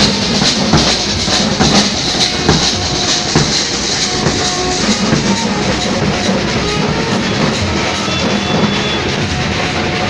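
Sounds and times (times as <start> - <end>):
hand cymbals: 0.0 - 10.0
snare drums: 0.0 - 10.0.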